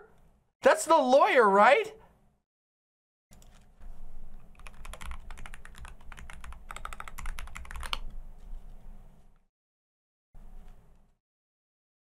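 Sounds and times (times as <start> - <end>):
typing on computer keyboard: 4.5 - 8.2.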